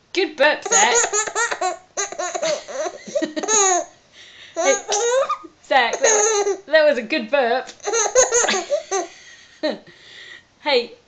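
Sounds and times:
baby laughing: 0.6 - 3.9, 4.6 - 6.7, 7.8 - 9.2.

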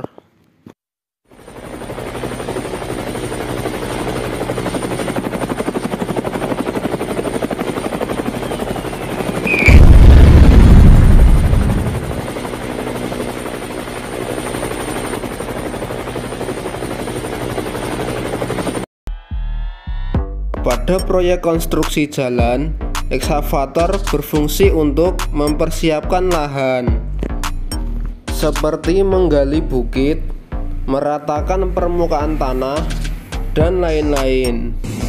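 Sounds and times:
helicopter rotor chopping: 1.3 - 18.9, 31.8 - 35.0
falling whistle: 8.3 - 10.0
loud explosion: 9.5 - 12.2.

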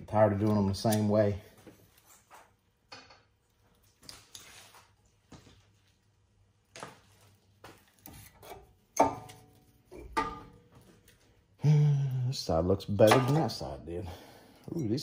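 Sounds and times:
sharp metal knocks: 10.0 - 10.6.

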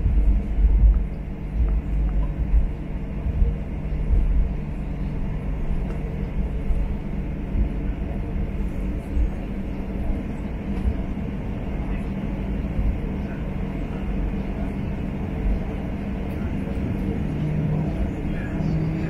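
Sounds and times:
aircraft engine drone: 0.0 - 19.0
low runway rumble: 0.0 - 19.0.

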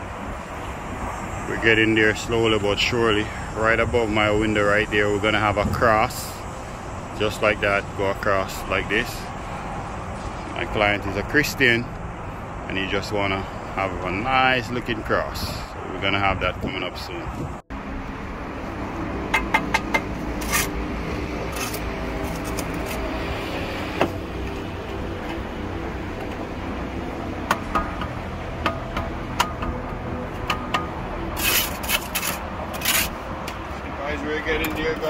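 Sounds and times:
trowel scraping on bricks: 20.3 - 20.8, 21.4 - 23.2, 31.3 - 33.2.

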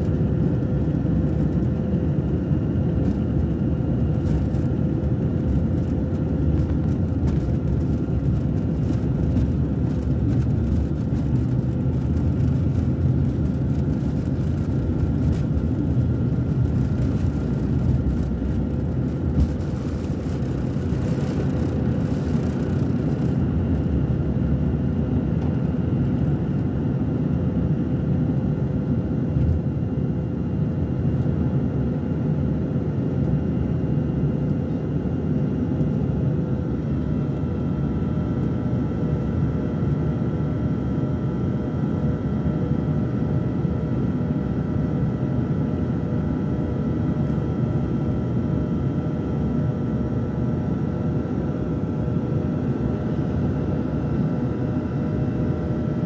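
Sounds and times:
jet engines rumbling: 0.0 - 32.7.

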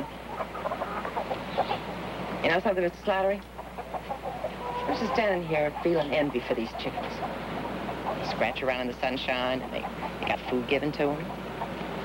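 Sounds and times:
chickens clucking: 0.0 - 12.0.

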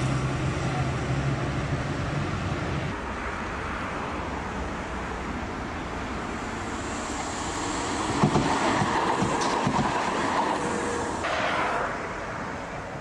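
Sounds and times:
tram rolling rumble: 0.0 - 13.0
tram wheels knocking on rail joints: 8.0 - 12.3.

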